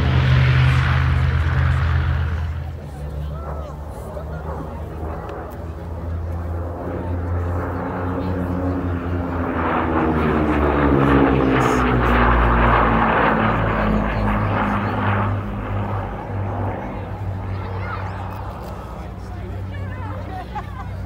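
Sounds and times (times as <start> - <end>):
propeller aircraft passing: 0.0 - 21.0.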